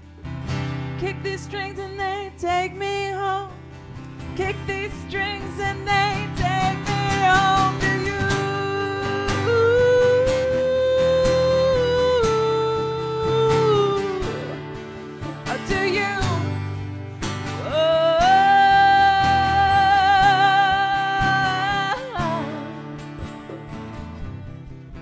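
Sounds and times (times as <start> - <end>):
strummed guitars: 0.0 - 25.0
held melody line with vibrato: 4.4 - 24.9.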